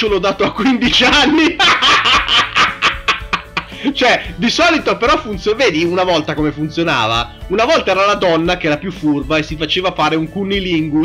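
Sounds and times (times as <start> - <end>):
background music: 0.0 - 11.0
man snickering: 0.3 - 4.0.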